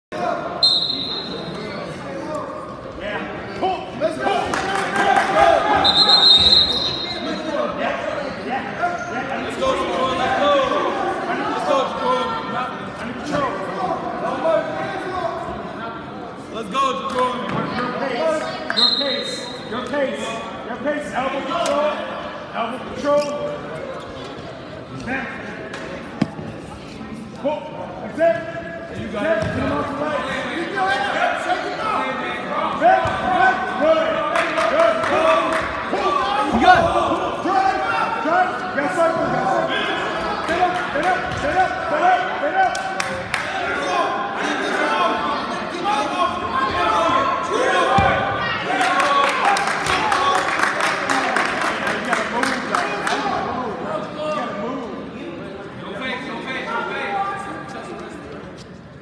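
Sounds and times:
voices echoing in a gym: 0.1s - 59.0s
referee's whistle blast: 0.6s - 1.6s, 5.8s - 7.5s, 18.7s - 19.6s.

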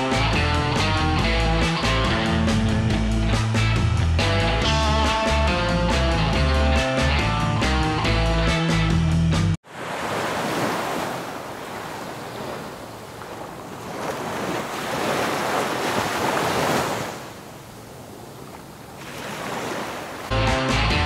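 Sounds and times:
ocean surf breaking on sand: 9.6s - 20.3s.

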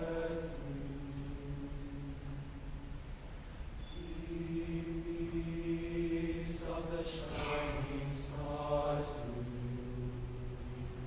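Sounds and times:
male choir singing: 0.0s - 2.8s, 3.8s - 11.0s.

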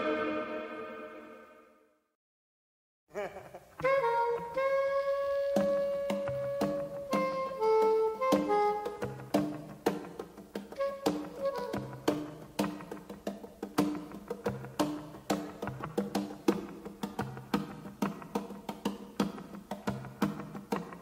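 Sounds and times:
funk band instrumental: 3.8s - 21.0s
percussion beat: 5.5s - 21.0s.

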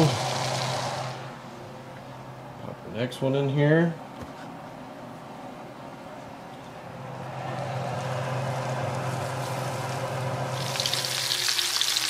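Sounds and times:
fish sizzling in a skillet: 10.5s - 12.0s.

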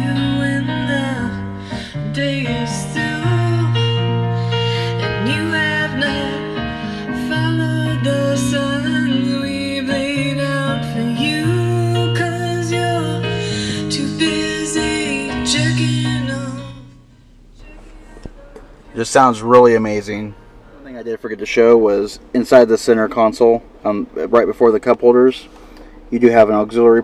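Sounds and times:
song on car stereo: 0.0s - 21.0s.

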